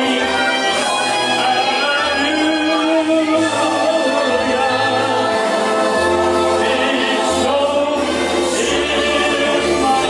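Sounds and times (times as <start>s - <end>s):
men singing karaoke: 0.0s - 10.0s.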